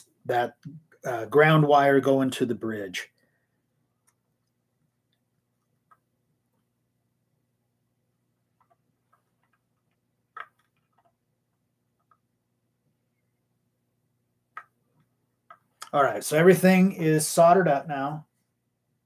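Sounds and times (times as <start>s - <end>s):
small clicks and taps: 4.0s - 6.1s, 8.5s - 12.3s, 14.5s - 16.0s.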